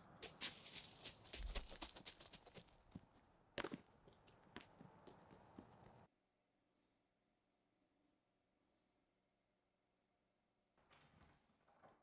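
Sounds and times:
footsteps crunching on dry leaves: 0:00.0 - 0:02.8.

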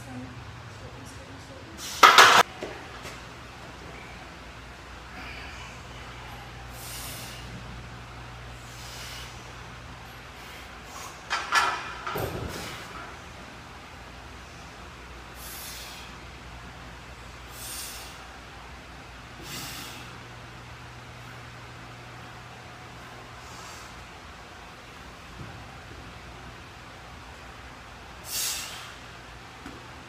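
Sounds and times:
low electrical hum: 0:00.0 - 0:30.0
person breathing sharply: 0:05.1 - 0:07.6, 0:15.4 - 0:16.2, 0:17.5 - 0:18.3, 0:28.2 - 0:29.0.

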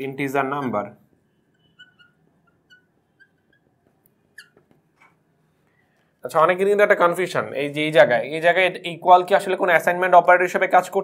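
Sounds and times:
marker squeaking on glass: 0:00.4 - 0:05.2.

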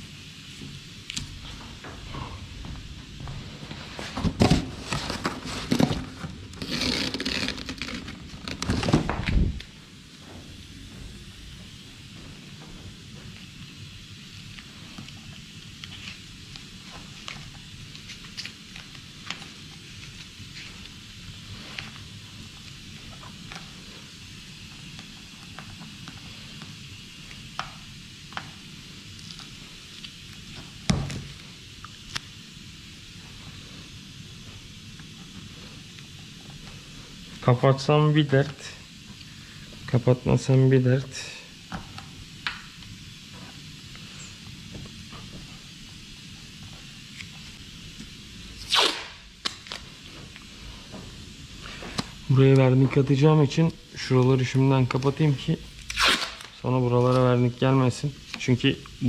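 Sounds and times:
masking tape rustling and tearing: 0:03.9 - 0:09.7, 0:14.6 - 0:23.7, 0:48.6 - 0:50.1, 0:54.8 - 0:57.4
soft crackles and clicks: 0:14.4 - 0:30.7, 0:31.3 - 0:32.4.

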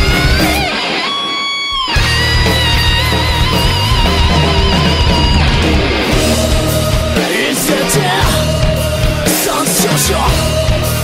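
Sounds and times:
rock song with guitars: 0:00.0 - 0:11.0.

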